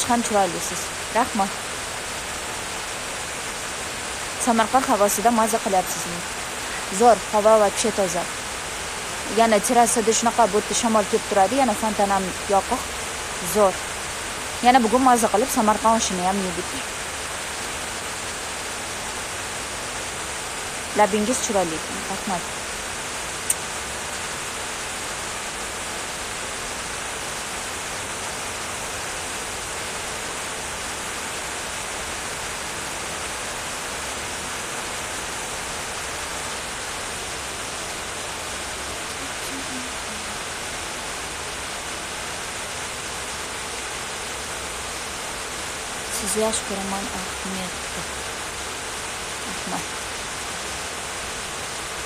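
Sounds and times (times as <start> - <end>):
background hiss: 0.0 - 52.0.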